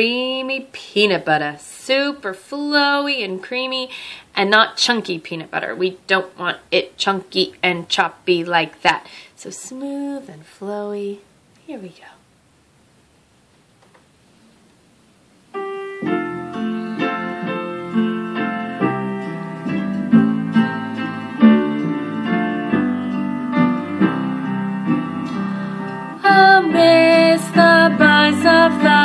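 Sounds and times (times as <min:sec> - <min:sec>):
woman singing with vibrato: 0:09.6 - 0:11.2, 0:25.9 - 0:29.0
piano flowing notes: 0:15.5 - 0:29.0.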